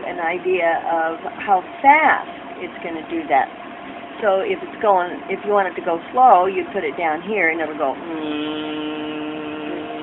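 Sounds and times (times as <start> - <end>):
woman humming: 8.0 - 10.0.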